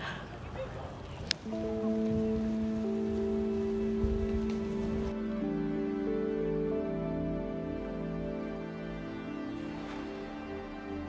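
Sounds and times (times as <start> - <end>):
soft slow background music: 1.4 - 11.0.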